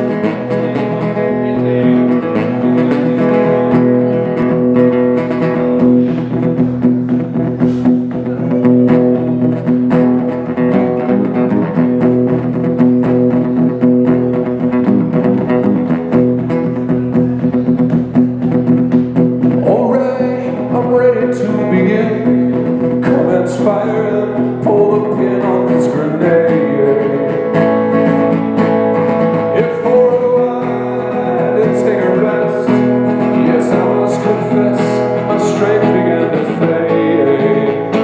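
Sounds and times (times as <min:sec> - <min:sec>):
acoustic guitar strummed and picked: 0:00.0 - 0:38.0.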